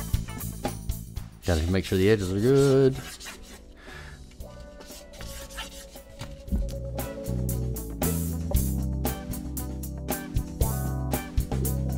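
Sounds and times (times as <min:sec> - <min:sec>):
quiet background music: 0:00.0 - 0:11.9
hand rubbing vinyl wrap on wood: 0:02.1 - 0:03.7, 0:04.5 - 0:06.8.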